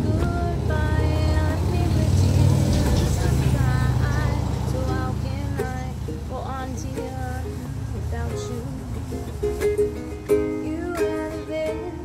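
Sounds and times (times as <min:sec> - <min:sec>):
ukulele playing: 0:00.0 - 0:12.0
vehicle engine rumble passing: 0:00.0 - 0:12.0
woman singing: 0:00.0 - 0:12.0.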